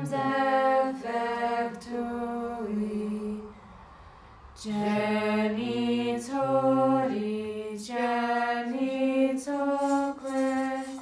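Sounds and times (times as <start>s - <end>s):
voices singing a hymn a cappella: 0.0s - 3.8s, 4.6s - 11.0s.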